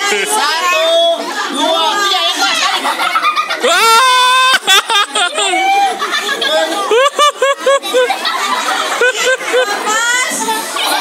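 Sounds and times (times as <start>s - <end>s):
children chattering excitedly: 0.0s - 11.0s.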